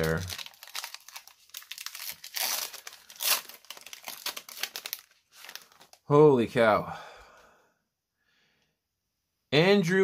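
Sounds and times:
wrapper crinkling: 0.0 - 6.2.

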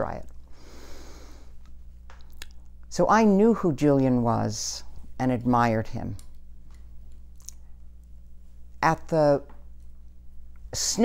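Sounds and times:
low room hum: 0.0 - 11.0
woman speaking: 8.8 - 9.5, 10.8 - 11.0.

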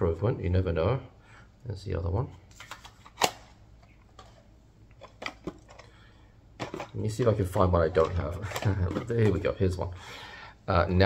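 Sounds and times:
plastic cassette cases clicking: 2.5 - 6.0, 6.6 - 9.5.

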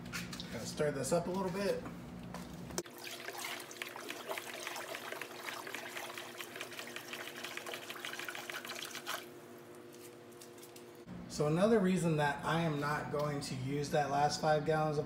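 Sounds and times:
hand sloshing water in tub: 2.8 - 9.3.

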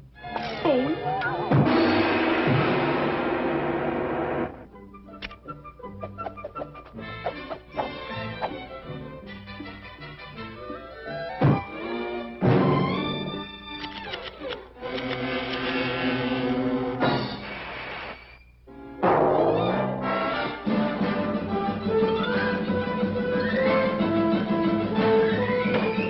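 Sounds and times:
cartoon metallic crash: 1.5 - 3.7, 19.0 - 20.8.

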